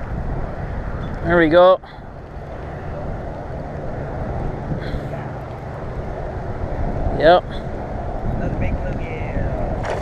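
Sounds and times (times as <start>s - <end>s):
wind rumble on microphone: 0.0s - 10.0s
microphone handling noise: 9.7s - 10.0s.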